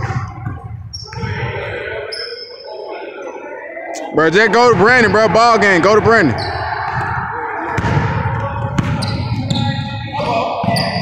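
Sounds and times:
distant chatter: 0.0 - 11.0
sneakers squeaking on hardwood: 6.0 - 11.0.

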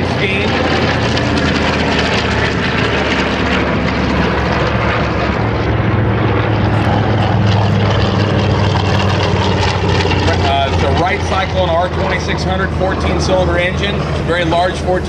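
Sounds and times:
propeller plane engine drone: 0.0 - 15.0.

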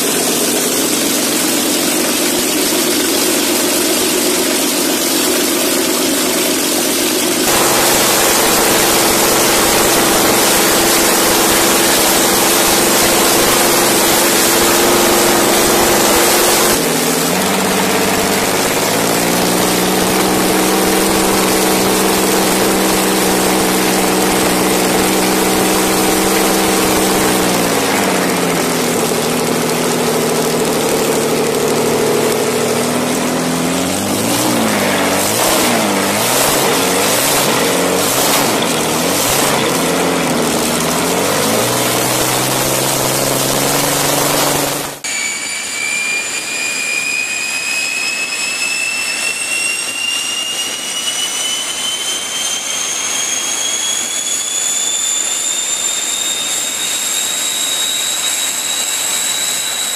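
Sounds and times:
jet engines whining: 0.0 - 59.9
tank engine revving: 0.0 - 59.9.

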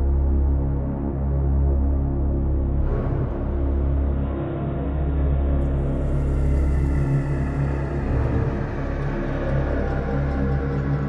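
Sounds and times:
deep rumbling bass drone: 0.0 - 11.0
layered sustained synth tones: 5.0 - 11.0.

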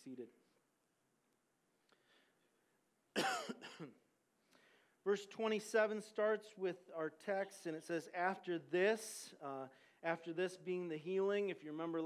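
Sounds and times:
man coughing: 3.2 - 4.0.

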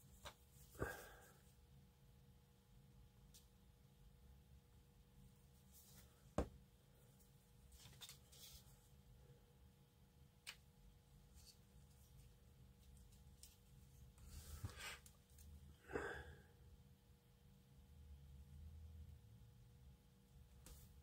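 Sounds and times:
faint steady hum: 0.0 - 21.0
soft rustle: 5.5 - 6.4.

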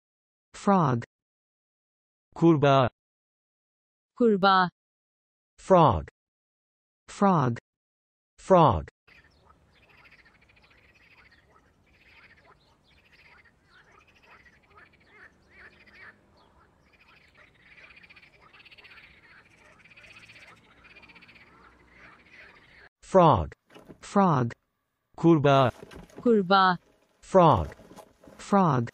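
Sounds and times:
frogs croaking: 9.1 - 22.9.

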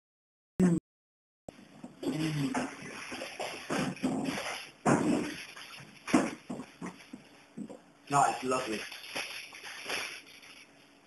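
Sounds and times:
rustling: 8.7 - 11.0.

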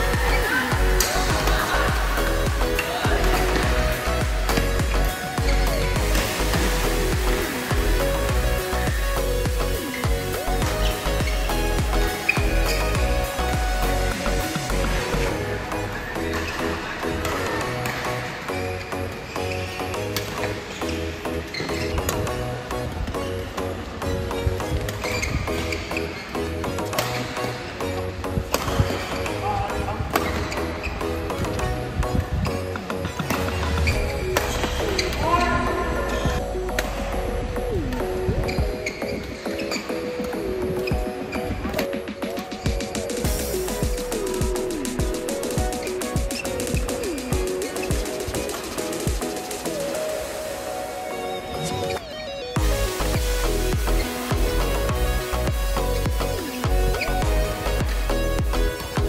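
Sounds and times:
music with bass pulse: 0.0 - 42.0, 42.6 - 49.9, 52.6 - 59.0
rackets striking shuttlecock: 28.5 - 29.4.

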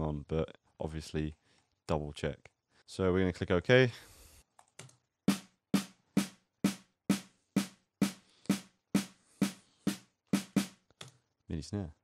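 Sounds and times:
snare drum hits: 5.3 - 10.8.

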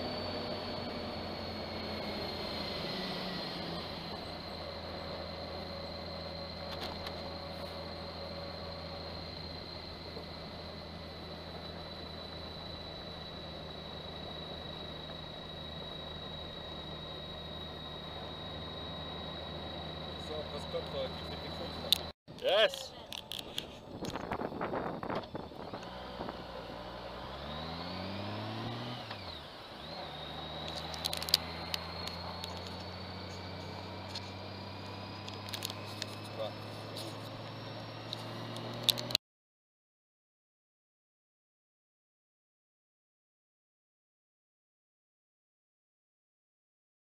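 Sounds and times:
thin high whine: 0.0 - 38.8
motorcycle running: 0.0 - 39.2
road noise: 0.0 - 39.2.

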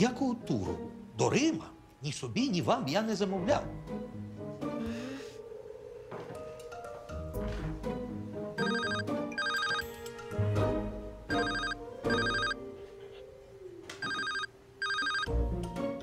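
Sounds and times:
background music score: 0.0 - 13.5, 14.6 - 16.0
phone ringtone: 8.6 - 10.2, 11.3 - 12.6, 14.0 - 15.3.

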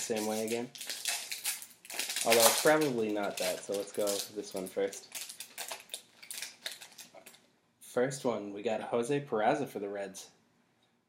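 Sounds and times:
foil pack crinkling: 0.0 - 7.4.

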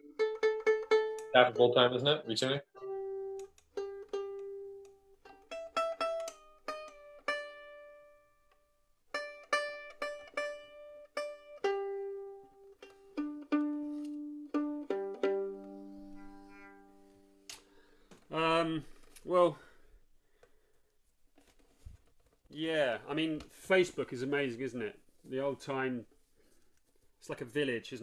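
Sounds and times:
fiddle strings plucked: 0.0 - 17.7.

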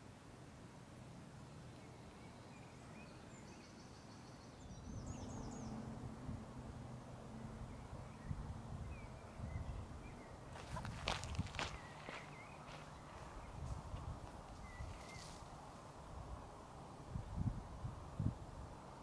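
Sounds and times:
crackling footsteps: 10.5 - 15.8
footsteps on dry grass: 10.5 - 15.8.

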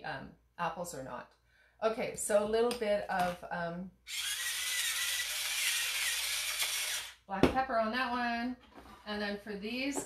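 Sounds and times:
pepper mill grinding: 4.1 - 7.2.

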